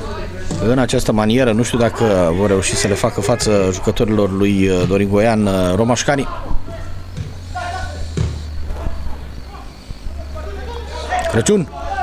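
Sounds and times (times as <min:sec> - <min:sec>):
steady low hum: 0:00.0 - 0:12.0
soft knocks: 0:07.2 - 0:07.5, 0:08.1 - 0:08.9.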